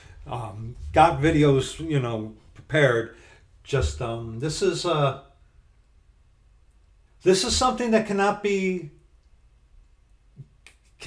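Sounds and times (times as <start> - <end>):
short breath: 3.2 - 3.5.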